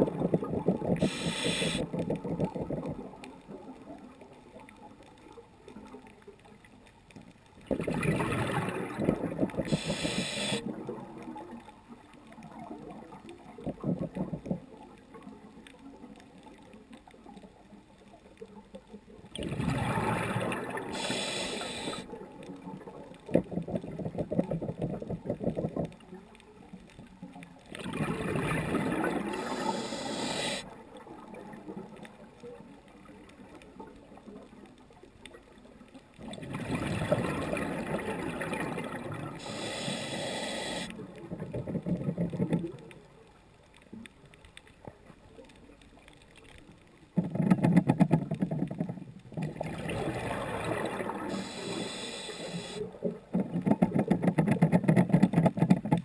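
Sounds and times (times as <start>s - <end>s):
bubbly crackling: 0.0s - 6.4s, 7.6s - 16.6s, 19.2s - 56.0s
diver breathing through regulator: 0.9s - 2.0s, 9.6s - 10.6s, 20.8s - 22.1s, 29.3s - 30.7s, 39.4s - 41.0s, 51.2s - 52.8s.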